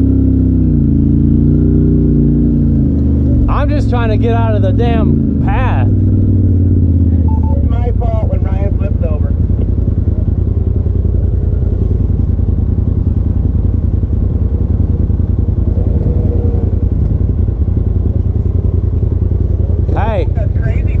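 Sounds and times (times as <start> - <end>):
engine idling: 1.0 - 21.0.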